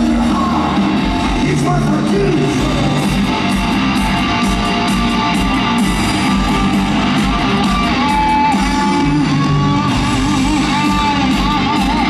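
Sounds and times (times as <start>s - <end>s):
hard rock band playing live: 0.0s - 12.0s.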